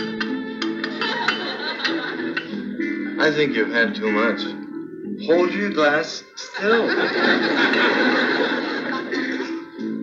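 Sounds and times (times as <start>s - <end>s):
background music: 0.0s - 10.0s
people laughing: 0.9s - 2.6s, 6.4s - 9.8s.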